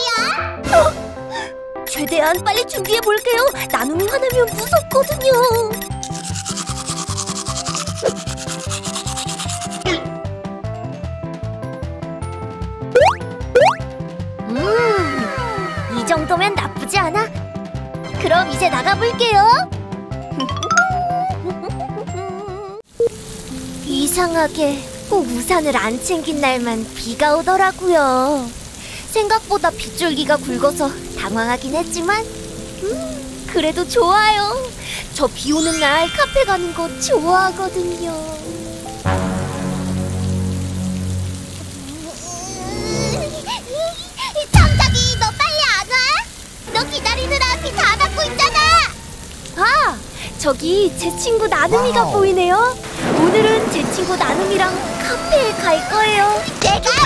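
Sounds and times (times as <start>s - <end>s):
bouncy background music: 0.0s - 8.5s, 9.2s - 10.8s, 12.2s - 22.7s
steady rain falling: 1.9s - 9.8s, 14.4s - 19.6s, 22.8s - 57.0s
high cartoon voice shouting: 51.7s - 52.4s.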